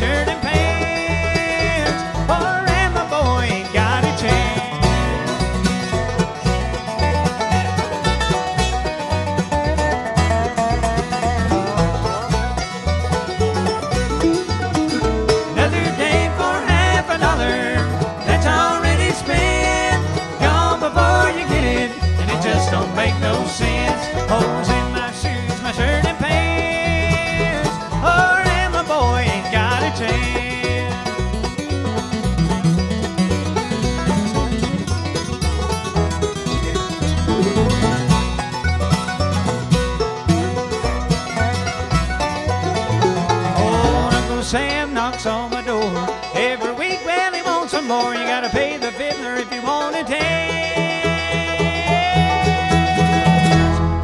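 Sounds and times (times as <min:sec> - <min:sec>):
acoustic guitar picking: 0:00.0 - 0:54.0
banjo picking: 0:00.0 - 0:54.0
mandolin picking: 0:00.0 - 0:54.0.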